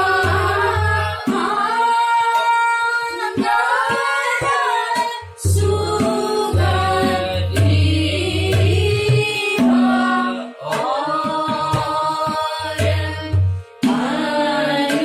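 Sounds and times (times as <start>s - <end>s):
harmonium: 0.0s - 15.0s
low tabla strokes: 0.0s - 15.0s
woman leading group singing: 0.0s - 15.0s.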